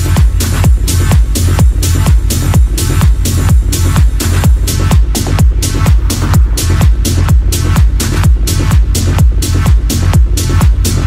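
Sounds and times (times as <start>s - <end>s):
off-beat hi-hats: 0.0s - 11.0s
steady kick drum: 0.0s - 11.0s
techno music: 0.0s - 11.0s.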